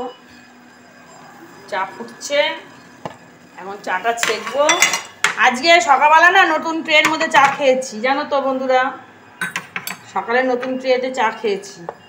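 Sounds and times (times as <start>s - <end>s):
metal spoon clinking on dishes: 4.2s - 5.4s, 9.4s - 10.8s.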